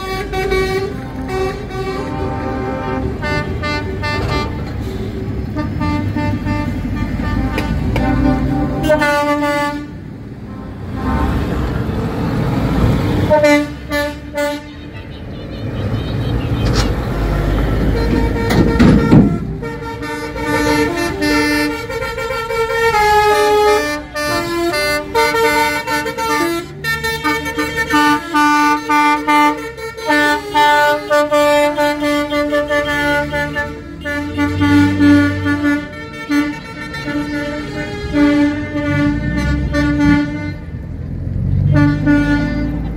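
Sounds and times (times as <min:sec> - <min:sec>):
musical air horn tune: 0:00.0 - 0:11.5, 0:16.6 - 0:40.8, 0:41.7 - 0:42.9
truck air horns blowing: 0:00.0 - 0:11.9, 0:13.1 - 0:40.9, 0:41.6 - 0:42.9
diesel trucks driving past: 0:00.0 - 0:42.9.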